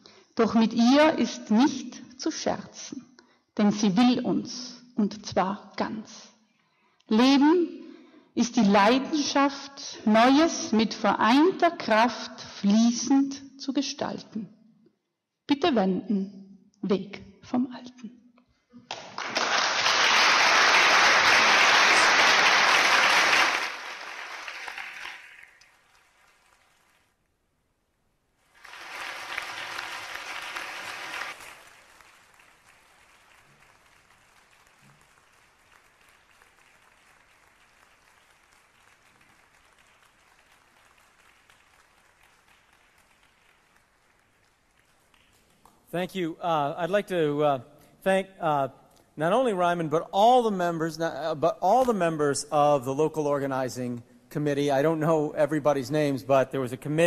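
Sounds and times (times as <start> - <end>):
audience applauding: 18.9 - 27.1, 28.5 - 45.9.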